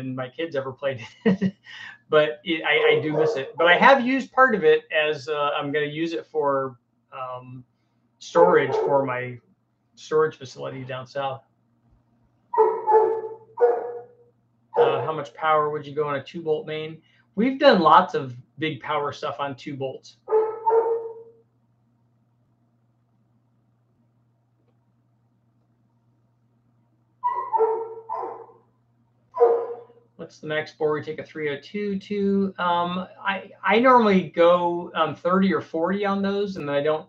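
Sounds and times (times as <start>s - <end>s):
faint steady hum: 0.0s - 37.0s
dog barking: 2.8s - 3.6s, 8.5s - 9.0s, 12.6s - 14.2s, 14.8s - 15.2s, 20.3s - 21.4s, 27.2s - 28.6s, 29.4s - 30.0s.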